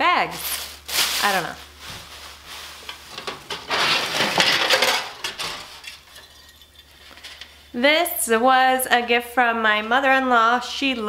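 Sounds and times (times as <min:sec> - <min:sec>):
rustling in plastic tote: 0:00.4 - 0:06.1.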